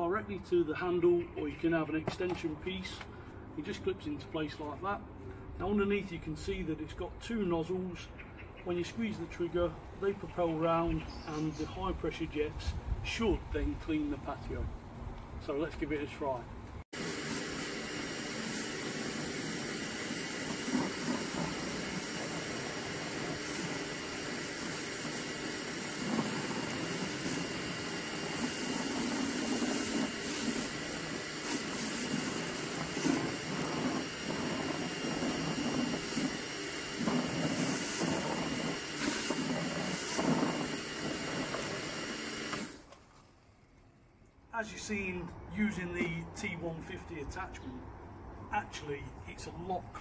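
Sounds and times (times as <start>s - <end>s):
high-pressure spray hissing: 17.0s - 42.9s.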